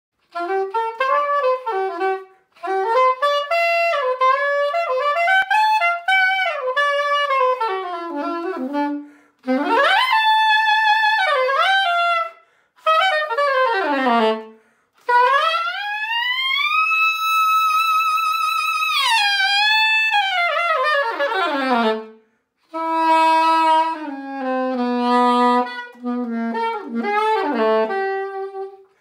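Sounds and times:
soprano saxophone melody: 0.2s - 29.0s.

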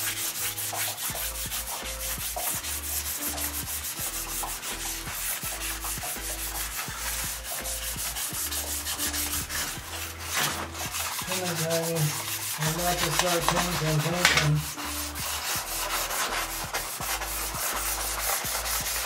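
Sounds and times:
charcoal rubbing on paper: 0.0s - 19.0s.

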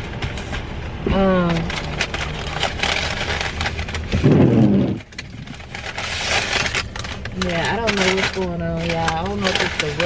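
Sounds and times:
paper bag crinkling: 0.0s - 10.0s.

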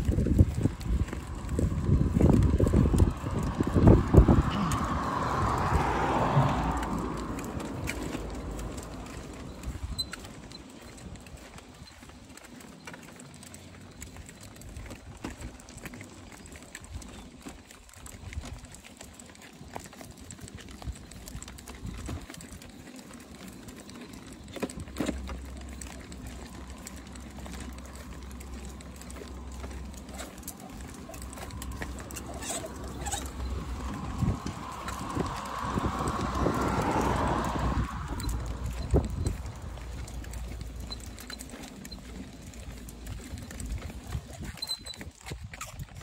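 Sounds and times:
wind rumble on microphone: 0.0s - 12.3s, 13.9s - 46.0s
footsteps on concrete: 0.0s - 46.0s
plastic tricycle wheels rattling: 0.0s - 46.0s.

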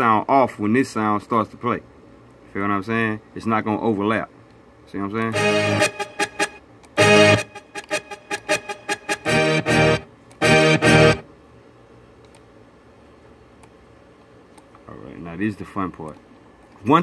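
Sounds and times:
low room hiss: 0.0s - 17.0s
short guitar-like sample stabs: 5.4s - 11.2s.

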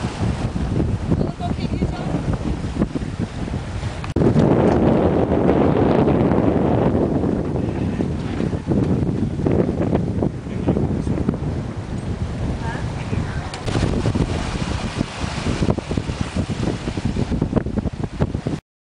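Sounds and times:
water rushing along hull: 0.0s - 18.6s
wind buffeting microphone: 0.0s - 18.6s.

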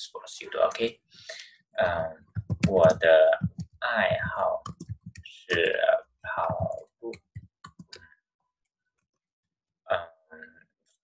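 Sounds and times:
keyboard typing clicks: 6.4s - 8.1s.

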